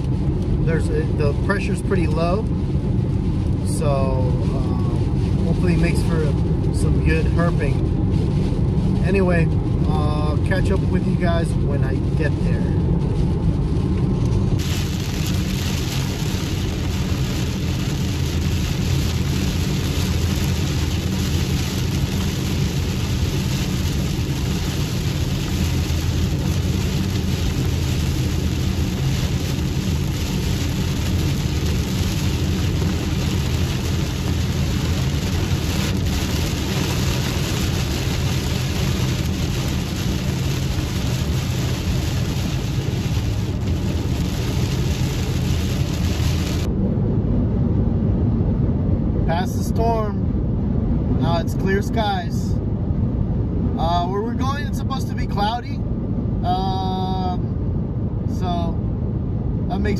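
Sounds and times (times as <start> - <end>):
rain on car windshield and roof: 0.0 - 46.7
engine and road rumble: 0.0 - 59.9.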